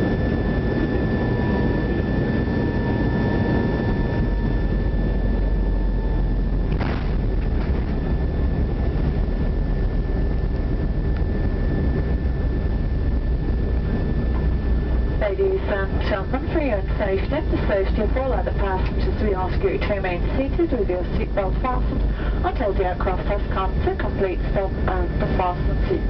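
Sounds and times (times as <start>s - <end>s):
high engine whine: 0.0s - 26.0s
jet engines rumbling: 0.0s - 26.0s.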